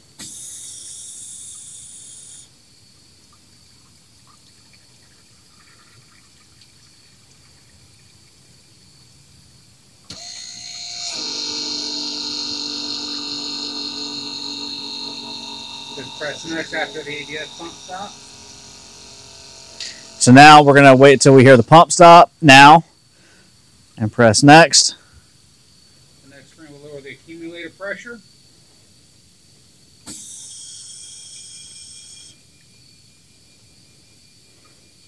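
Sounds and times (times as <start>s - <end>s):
pump motor whine: 0.0s - 2.4s, 10.1s - 22.8s, 30.1s - 32.4s
brief high-pitched whine: 10.1s - 21.6s.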